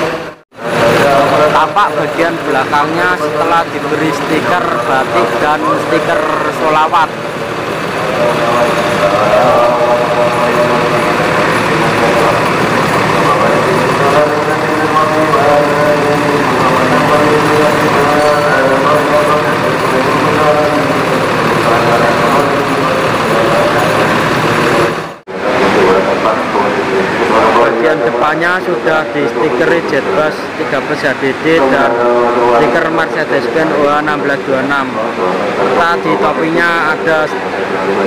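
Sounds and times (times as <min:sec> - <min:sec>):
vehicle engine running: 0:00.0 - 0:27.5
indistinct voices: 0:00.0 - 0:38.0.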